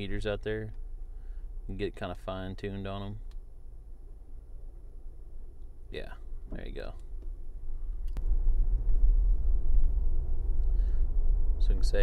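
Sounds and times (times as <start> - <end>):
truck engine rumble from inside cab: 0.0 - 12.0.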